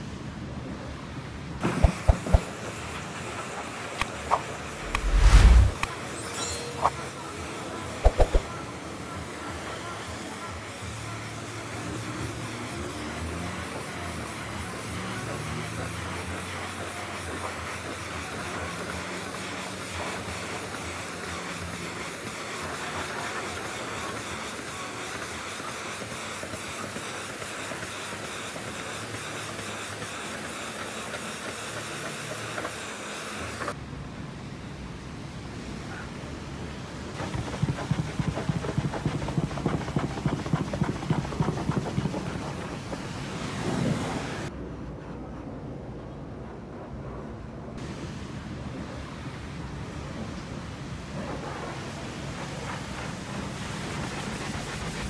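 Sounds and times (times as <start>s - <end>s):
low steady hum: 4.8s - 5.9s
pressure washer spraying metal: 52.1s - 55.0s.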